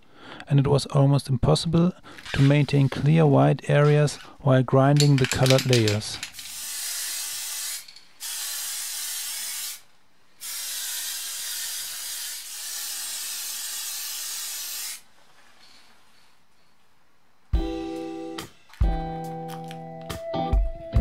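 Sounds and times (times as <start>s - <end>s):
spray paint can hissing: 6.4s - 9.8s, 10.4s - 15.0s.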